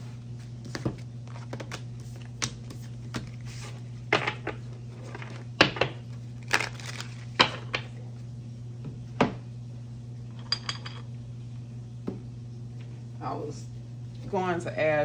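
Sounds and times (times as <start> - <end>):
steady low hum: 0.0 - 15.0
cards tapping and rattling: 0.7 - 3.4.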